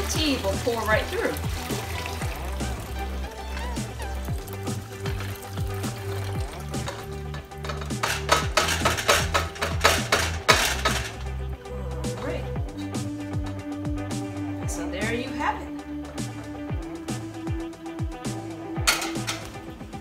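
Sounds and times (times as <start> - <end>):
tea pouring into a pitcher: 0.0 - 9.1
background music with bass beat: 0.0 - 20.0
sharp knocks and clinks: 6.9 - 11.2.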